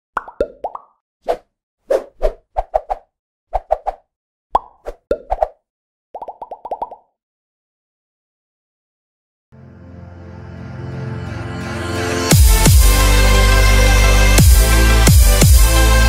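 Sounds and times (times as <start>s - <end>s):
cartoon plop and bloop effects: 0.2s - 1.0s, 6.2s - 7.1s.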